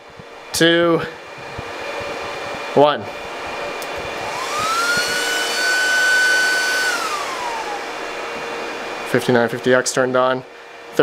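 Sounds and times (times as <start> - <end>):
cooling fan whine: 0.0 - 11.0
fan hiss: 0.0 - 11.0.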